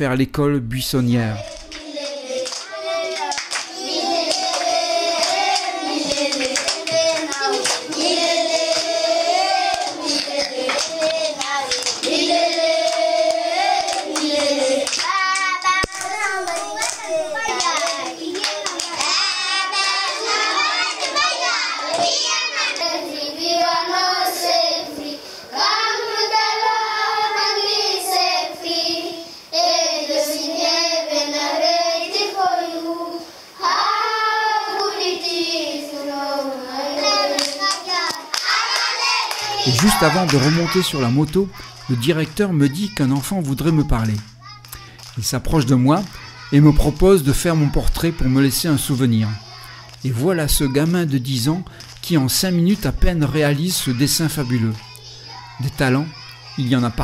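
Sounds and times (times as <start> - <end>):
hand clapping: 1.4 - 22.9, 37.3 - 45.2, 46.0 - 47.2, 51.6 - 52.1
children singing together: 1.4 - 45.0, 45.6 - 57.0.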